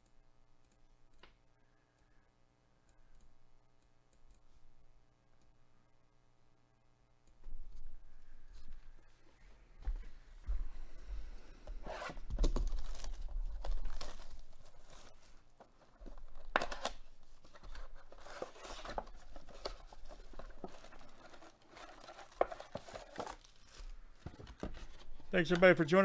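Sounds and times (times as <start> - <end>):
foil packs handled: 12.5 - 15.5, 16.1 - 25.8
shrink-wrap tearing and crinkling: 12.6 - 15.2, 18.1 - 23.9.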